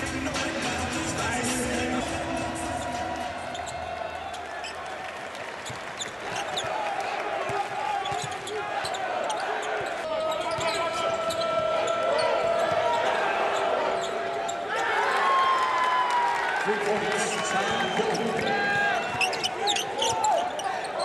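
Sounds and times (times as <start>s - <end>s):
crowd hum: 0.0s - 14.8s
sneakers squeaking on court: 2.7s - 6.9s, 7.5s - 14.7s, 17.7s - 21.0s.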